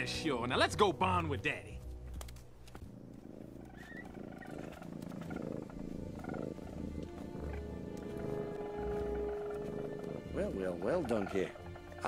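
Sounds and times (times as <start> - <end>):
quiet film music: 0.0 - 12.0
cat purring: 2.5 - 12.0.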